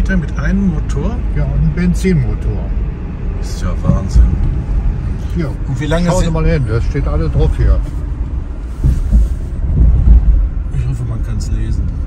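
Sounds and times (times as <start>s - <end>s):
car engine rumble: 0.0s - 12.0s
wind buffeting microphone: 7.3s - 10.9s.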